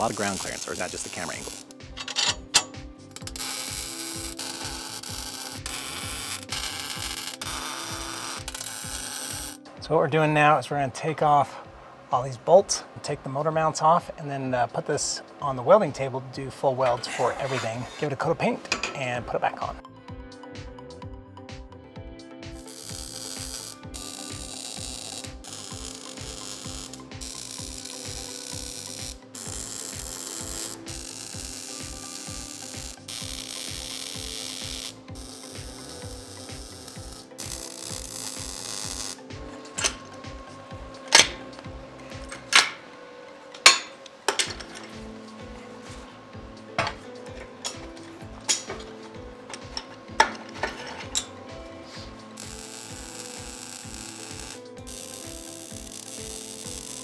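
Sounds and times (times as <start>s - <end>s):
arc welder crackling: 0.0s - 9.9s, 22.4s - 57.0s.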